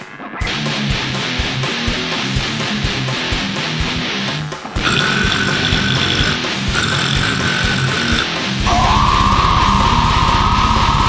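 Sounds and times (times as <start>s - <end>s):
metal song with distorted guitar: 0.0s - 11.0s
high held tone: 4.8s - 11.0s.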